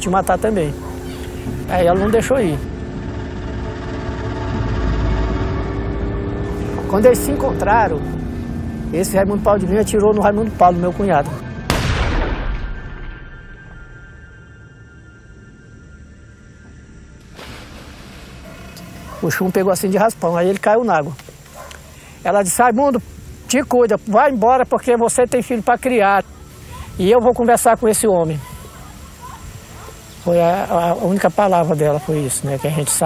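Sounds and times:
small boat motor running: 0:00.0 - 0:11.1
low rumble: 0:00.0 - 0:19.2
ominous background music: 0:00.0 - 0:20.2
steady hiss: 0:17.2 - 0:33.0.

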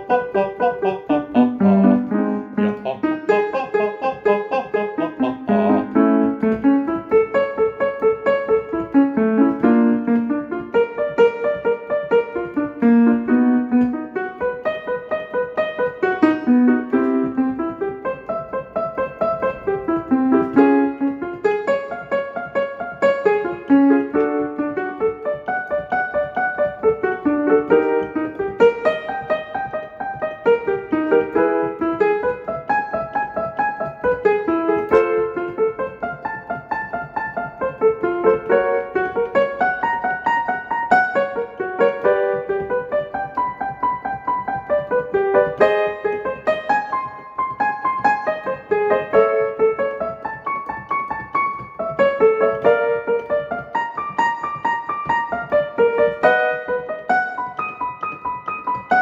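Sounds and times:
piano warm-up pattern: 0:00.0 - 0:59.0.

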